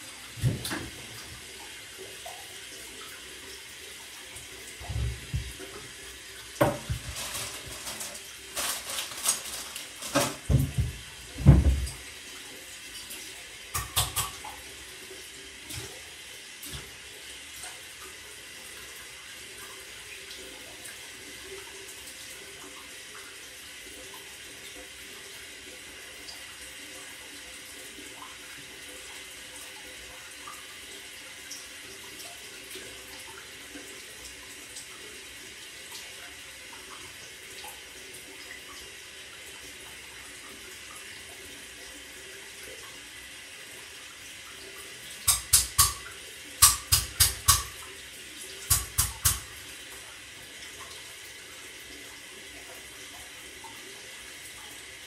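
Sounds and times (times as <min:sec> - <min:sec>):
water running: 0:00.0 - 0:55.0.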